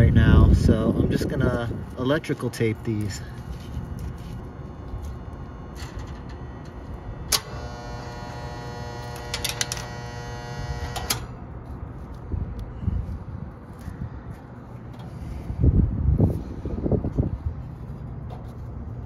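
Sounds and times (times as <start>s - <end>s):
higher electrical buzz: 0.0s - 11.9s
low electrical hum: 0.0s - 19.0s.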